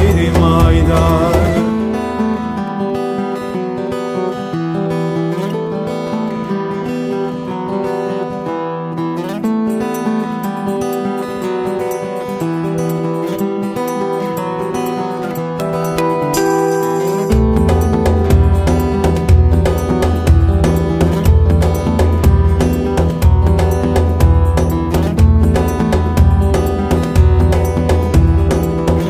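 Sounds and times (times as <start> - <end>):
acoustic guitar playing: 0.0 - 29.0.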